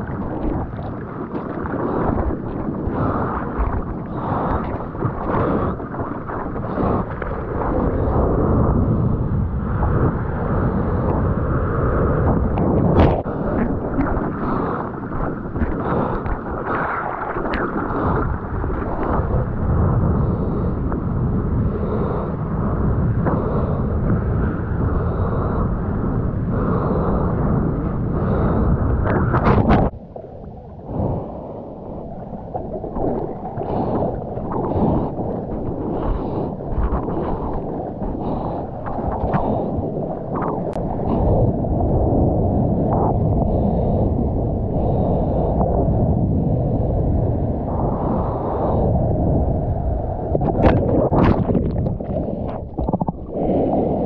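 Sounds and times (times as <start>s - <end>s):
rushing water: 0.0s - 8.4s, 12.2s - 20.2s
wind rumble: 0.0s - 54.0s.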